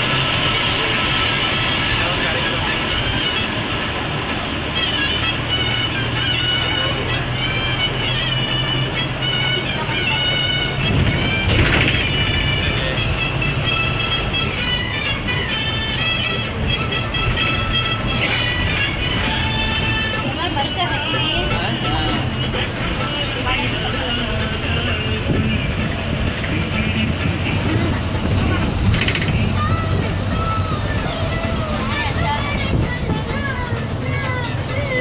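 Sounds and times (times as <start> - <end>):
bus engine and road rumble: 0.0 - 35.0
music with singing voice: 4.7 - 35.0.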